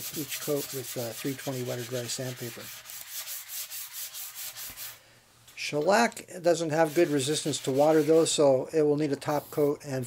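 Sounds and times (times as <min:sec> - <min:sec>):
sandpaper scratching on wood: 0:00.0 - 0:05.0, 0:06.8 - 0:08.4, 0:09.3 - 0:09.8.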